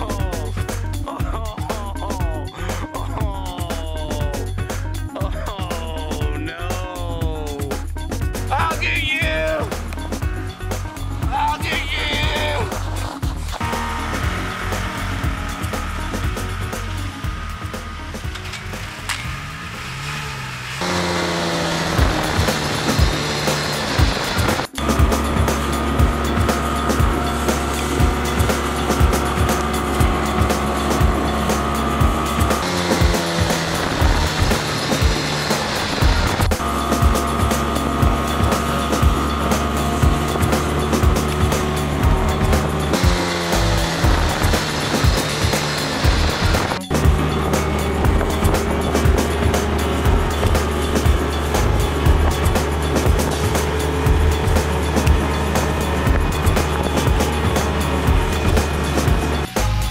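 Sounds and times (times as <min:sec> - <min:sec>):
background music with steady beat: 0:00.0 - 0:19.6, 0:20.8 - 0:59.9.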